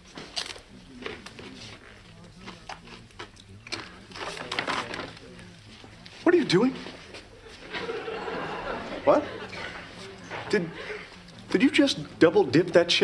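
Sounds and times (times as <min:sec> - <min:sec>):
murmur of party conversation: 0:00.6 - 0:13.0.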